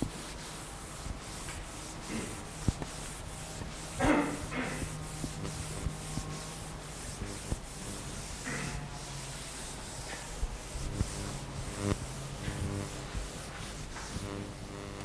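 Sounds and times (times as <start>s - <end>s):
chalk scratching on chalkboard: 0.0s - 14.5s
low room hum: 0.0s - 15.0s.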